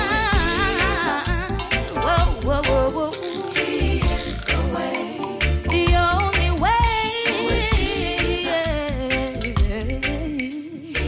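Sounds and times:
gospel worship band music: 0.0 - 11.0.

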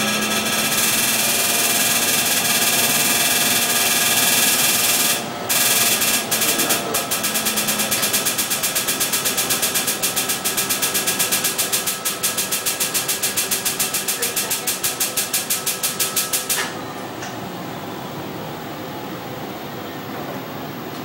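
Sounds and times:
machine hum: 0.0 - 21.0
laser clicking: 0.6 - 16.7.

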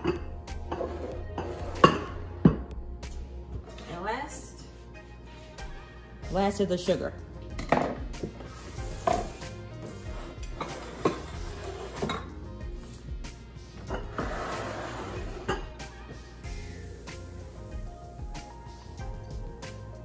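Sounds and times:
quiet background music: 0.0 - 20.0.

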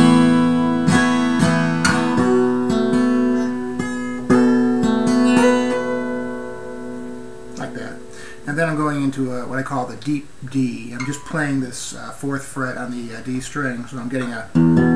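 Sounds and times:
acoustic guitar chords: 0.0 - 14.9.

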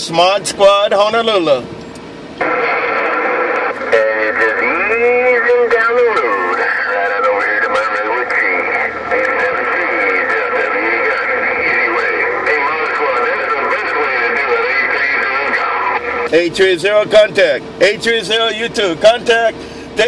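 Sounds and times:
radio voices warbling: 2.4 - 20.0.

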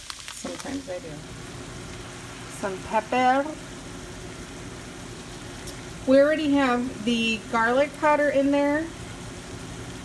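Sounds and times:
vegetables sizzling in a pan: 0.0 - 10.0.

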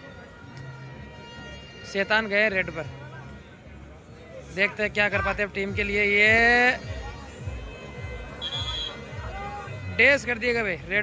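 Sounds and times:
crowd noise: 0.0 - 11.0
referee's whistle blast: 8.4 - 9.0.

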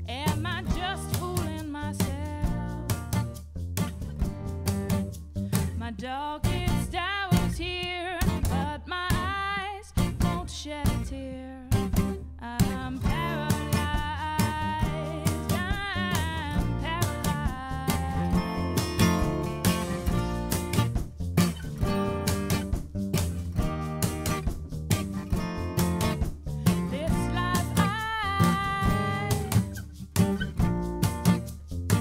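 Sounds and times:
live band music: 18.2 - 27.8.

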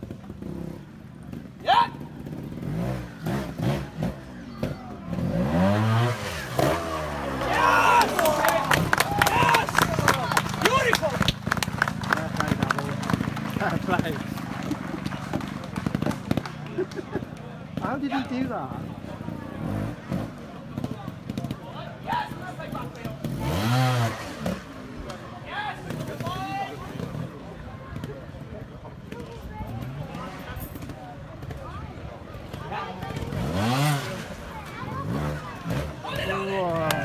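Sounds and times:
motorcycle engine revving: 0.0 - 16.9, 17.6 - 28.4, 29.1 - 37.0
spectators talking: 0.0 - 37.0
people shouting: 1.6 - 2.1, 6.9 - 11.2.

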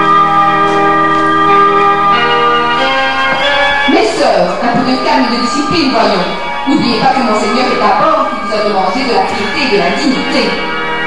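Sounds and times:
bells ringing: 0.0 - 11.0.

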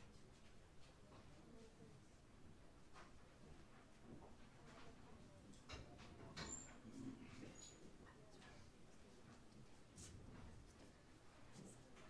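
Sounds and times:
faint high squeaks: 6.4 - 6.9.

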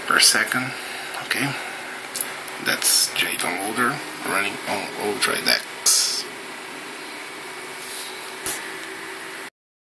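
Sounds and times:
faint hum: 0.0 - 9.5.

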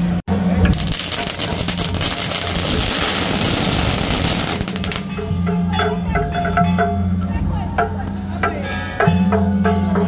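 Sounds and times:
firecrackers crackling: 0.7 - 5.1.

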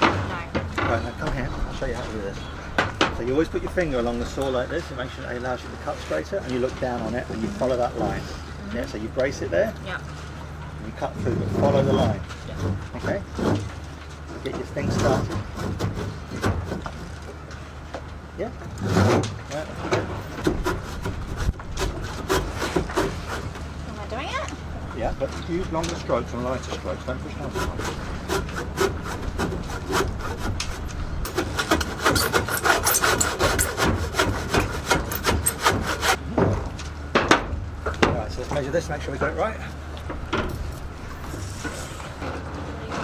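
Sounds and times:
steady low hum: 0.0 - 43.0
handsaw cutting timber: 20.4 - 23.6, 27.2 - 36.2.

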